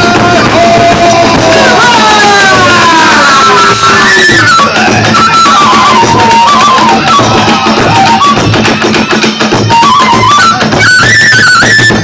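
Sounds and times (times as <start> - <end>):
loud drums: 0.0 - 12.0
bamboo flute sliding note: 3.1 - 8.5, 9.7 - 12.0.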